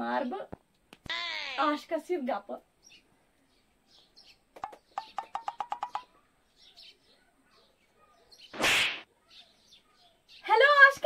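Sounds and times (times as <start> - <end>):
faint bird chirps: 2.8 - 11.0.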